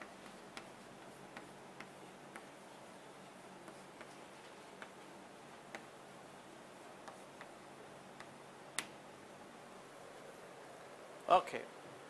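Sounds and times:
chalk tapping on a blackboard: 0.0s - 2.6s, 3.6s - 5.0s, 5.6s - 5.9s, 7.0s - 7.6s
steady room hiss: 0.0s - 12.0s.

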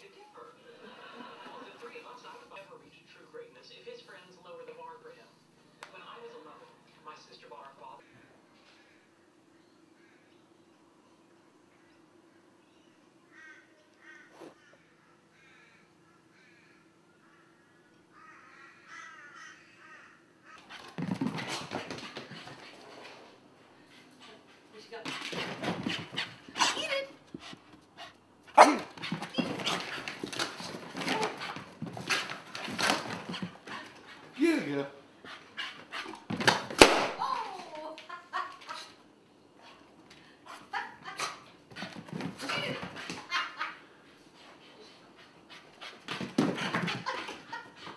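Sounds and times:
faint calls: 11.6s - 20.8s
dog scuffling on floor: 20.6s - 23.4s, 24.2s - 27.9s, 28.8s - 34.4s, 41.7s - 43.4s
dog claws on wooden floor: 28.8s - 34.0s.

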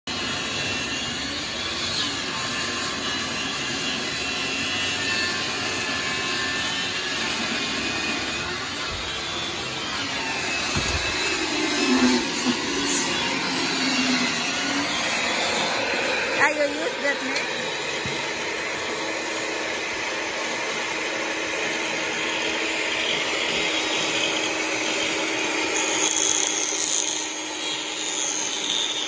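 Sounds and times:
table saw cutting wood: 0.1s - 29.0s.

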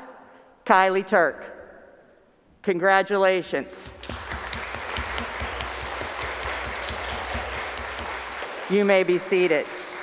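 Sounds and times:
hands clapping: 3.8s - 10.0s.

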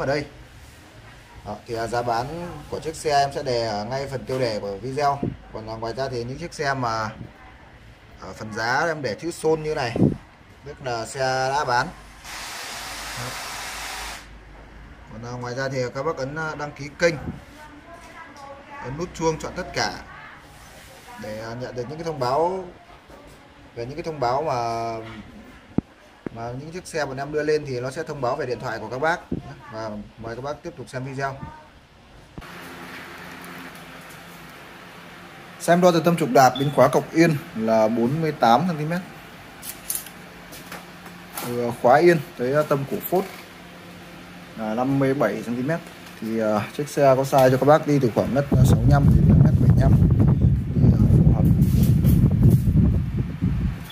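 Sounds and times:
rushing hiss of air: 12.2s - 14.4s.

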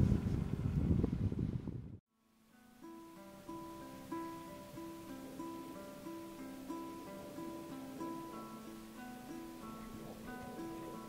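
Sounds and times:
wind rumble on microphone: 0.0s - 2.0s
acoustic guitar picking notes: 2.2s - 11.0s.

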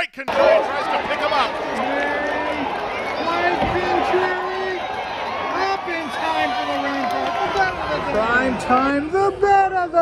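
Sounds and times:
man calling a horse race: 0.0s - 10.0s
racetrack crowd noise: 0.0s - 10.0s.

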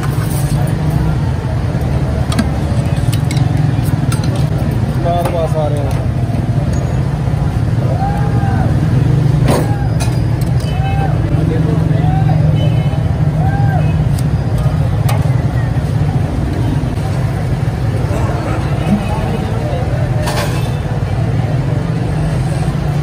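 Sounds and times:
metal spoons clinking on plates: 3.0s - 4.6s
faint voices: 7.4s - 23.0s.

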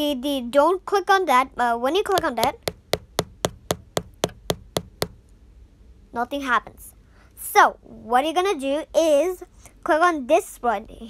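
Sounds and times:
fingertip taps on touchscreen: 2.2s - 5.2s.

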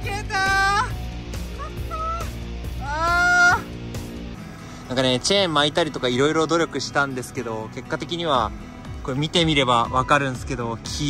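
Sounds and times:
excited high-pitched shouting: 0.0s - 0.9s, 1.5s - 3.7s.

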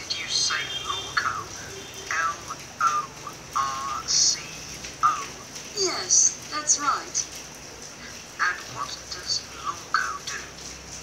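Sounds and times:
recorded telephone conversation: 0.0s - 7.3s, 8.0s - 10.6s.

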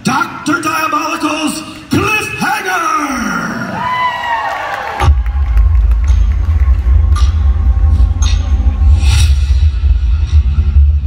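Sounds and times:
crowd cheering and whooping: 3.6s - 7.7s
deep bass rumble over speakers: 5.0s - 11.0s.

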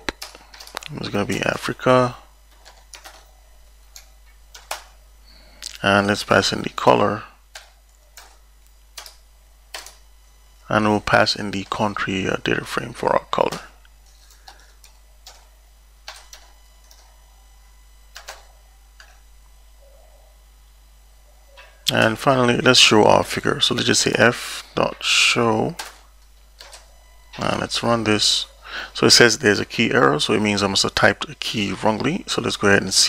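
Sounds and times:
computer keyboard keystrokes: 0.0s - 0.9s, 2.5s - 3.3s, 3.9s - 4.9s, 7.5s - 8.4s, 9.0s - 10.0s, 18.1s - 18.4s
low steady hum: 0.0s - 33.0s.

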